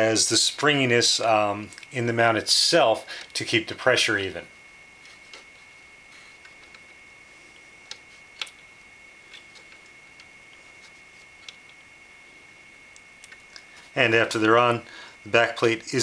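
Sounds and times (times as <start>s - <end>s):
steady high-pitched whine: 0.0s - 16.0s.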